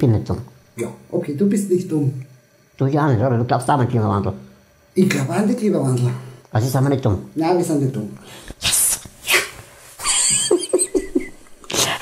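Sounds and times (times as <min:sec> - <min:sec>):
men laughing: 0:10.0 - 0:11.6.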